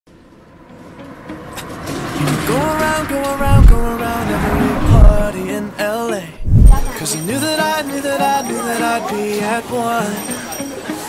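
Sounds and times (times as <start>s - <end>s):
street traffic noise: 0.1s - 11.0s.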